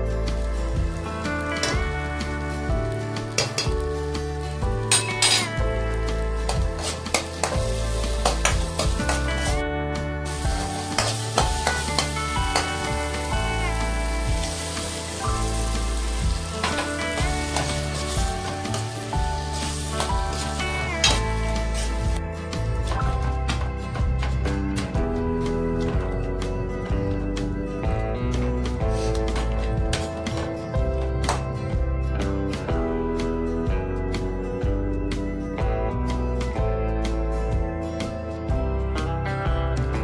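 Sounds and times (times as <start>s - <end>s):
instrumental background music: 0.0s - 40.0s
sauce sizzling in oil: 5.8s - 22.2s.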